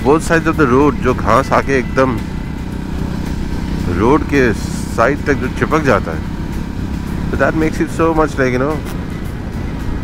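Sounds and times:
rider talking: 0.0 - 2.4, 3.7 - 6.4, 7.2 - 9.0
motorcycle engine humming: 0.0 - 10.0.

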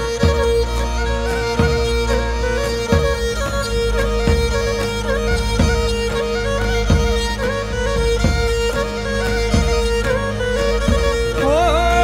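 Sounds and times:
bass drum beat: 0.0 - 12.0
bowed lyra over a drone: 0.0 - 12.0.

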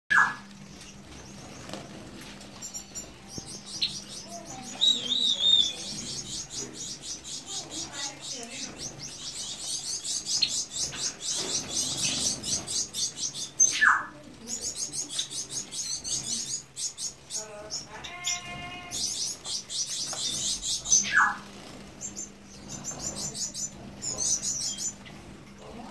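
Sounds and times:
finches chirping: 0.1 - 25.9.

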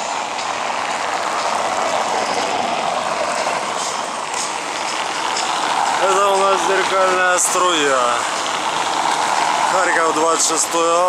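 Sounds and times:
car tyres rolling over cobblestones: 0.0 - 11.0.

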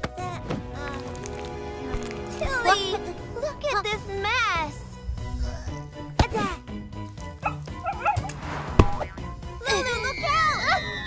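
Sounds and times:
light background music: 0.0 - 11.0.

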